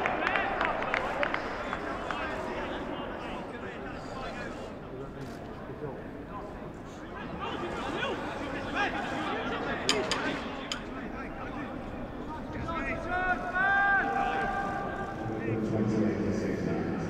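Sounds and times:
players and coaches shouting: 11.8s - 15.4s.

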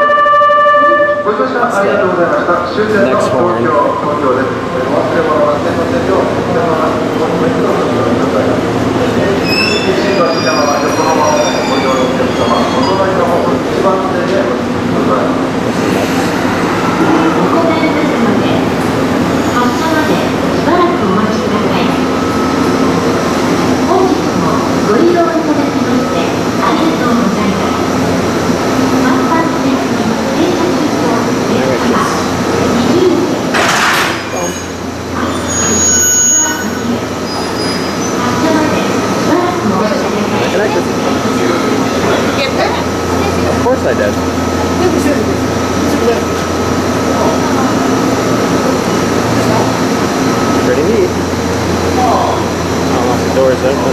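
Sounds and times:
electric train humming: 0.0s - 33.6s, 34.2s - 53.9s.

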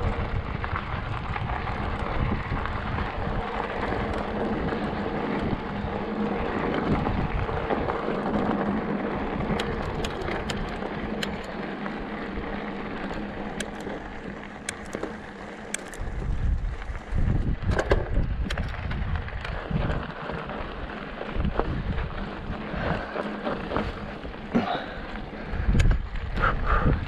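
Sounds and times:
wind on microphone: 0.0s - 11.3s, 15.8s - 20.2s, 21.2s - 24.7s, 25.4s - 27.0s
bike tyres rolling on gravel: 0.0s - 27.0s.

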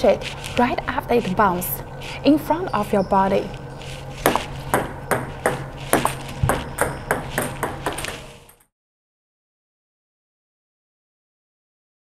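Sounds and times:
table tennis ball clicking: 4.2s - 8.7s.

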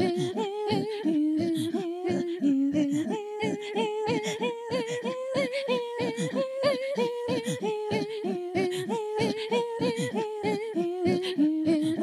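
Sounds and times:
women throat singing: 0.0s - 12.0s.

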